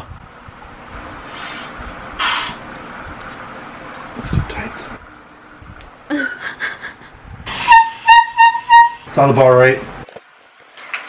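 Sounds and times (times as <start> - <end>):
breath hissing through clarinet mouthpiece: 1.2 - 2.6, 7.5 - 9.1.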